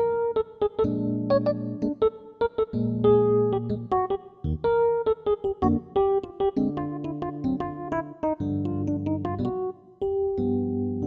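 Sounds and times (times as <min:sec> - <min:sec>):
electric piano jazz: 0:00.0 - 0:11.0.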